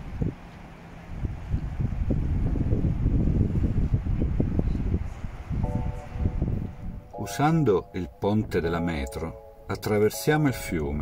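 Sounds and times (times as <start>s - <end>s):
wind buffeting microphone: 0.0s - 7.2s.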